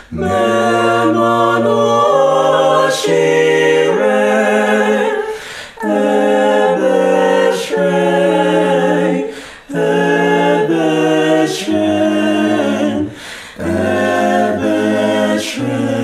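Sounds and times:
group singing a cappella: 0.0s - 16.0s.

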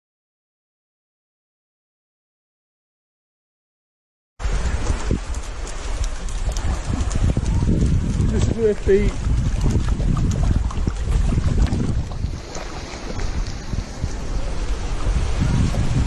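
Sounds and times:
wind buffeting microphone: 4.4s - 16.0s.

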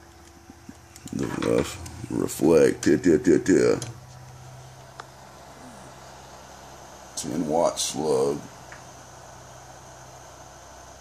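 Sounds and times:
faint steady hum: 0.0s - 11.0s
man speaking hesitantly: 1.1s - 3.9s.

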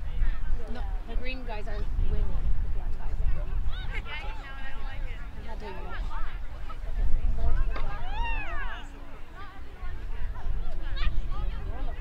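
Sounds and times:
faint scattered voices: 0.0s - 12.0s.

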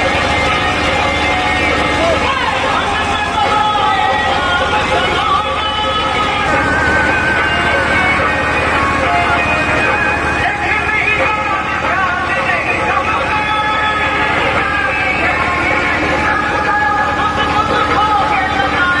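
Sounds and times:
many voices talking and calling: 0.0s - 19.0s.

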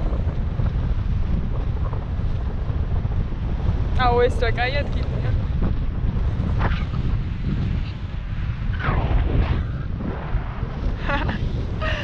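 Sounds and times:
strong wind rushing over microphone: 0.0s - 12.0s.

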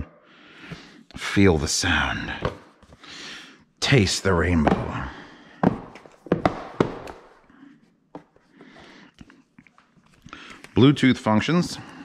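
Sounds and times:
taps and knocks on cardboard box: 5.6s - 7.2s.

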